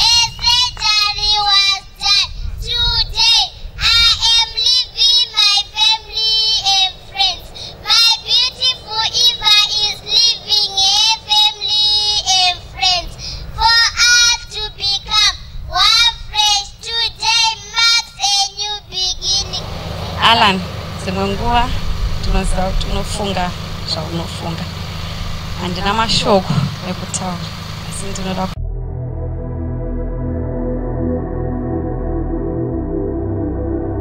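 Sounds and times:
low steady rumble: 0:00.0 - 0:34.0.

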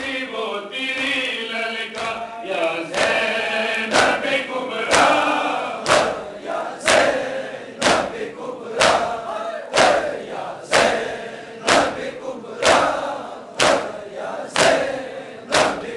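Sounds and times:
crowd of men chanting: 0:00.0 - 0:15.9
chest-beating slaps: 0:05.8 - 0:07.2, 0:07.8 - 0:15.9.

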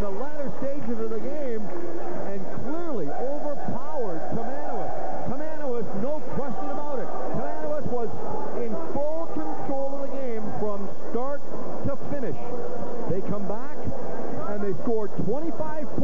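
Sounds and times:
many voices talking and calling: 0:00.0 - 0:16.0.

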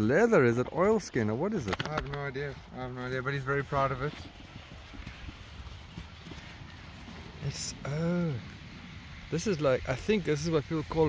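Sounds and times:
faint rustling of raincoat: 0:02.2 - 0:09.4.

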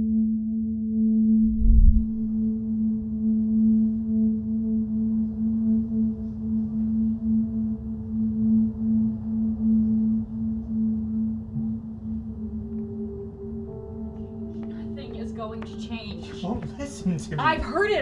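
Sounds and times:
rumbling low undertone: 0:00.0 - 0:15.6
steady held drone tone: 0:00.0 - 0:17.2.

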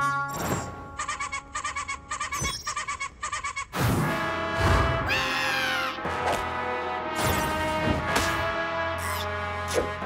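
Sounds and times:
cartoon music: 0:00.0 - 0:03.8, 0:04.6 - 0:06.1.

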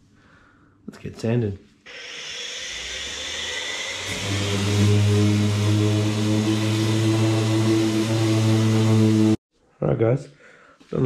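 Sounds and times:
orbital sander running: 0:01.9 - 0:09.4.

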